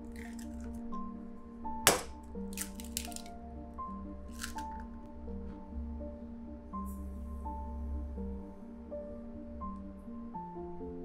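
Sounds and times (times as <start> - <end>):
egg cracking wet squishes: 0.0 - 0.8, 1.9 - 3.4, 4.3 - 4.9
soft background music: 0.0 - 11.0.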